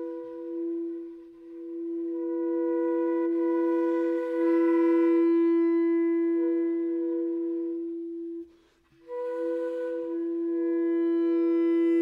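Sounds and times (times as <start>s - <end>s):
long wind instrument note: 0.0s - 12.0s.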